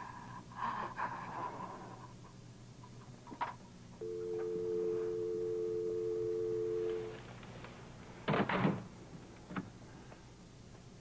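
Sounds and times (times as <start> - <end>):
telephone dial tone: 4.0 - 7.1.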